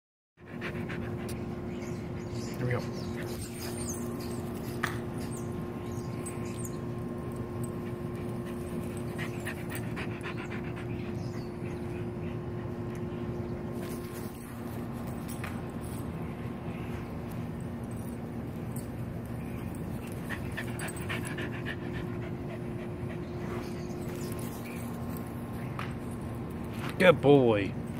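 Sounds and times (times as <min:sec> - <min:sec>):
outdoor background hum: 0:00.4 - 0:27.9
constant low tones: 0:00.6 - 0:27.9
dog panting: 0:07.8 - 0:12.8, 0:20.0 - 0:24.0.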